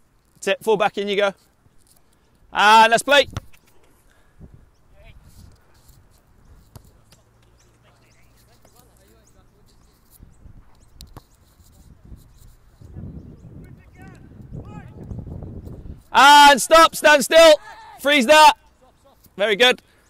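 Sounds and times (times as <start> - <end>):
football kick thuds: 3.3 - 3.6
distant shouts of footballers: 13.6 - 15.0, 16.1 - 18.7.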